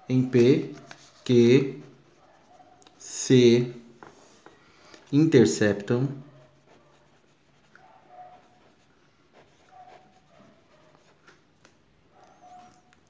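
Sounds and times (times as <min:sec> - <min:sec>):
pen scratching on paper: 0:06.5 - 0:11.2.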